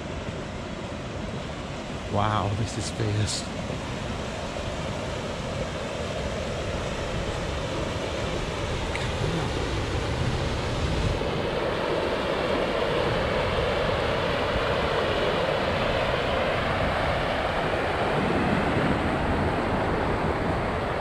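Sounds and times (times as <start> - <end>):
wind buffeting microphone: 3.6 - 12.1, 16.6 - 21.0.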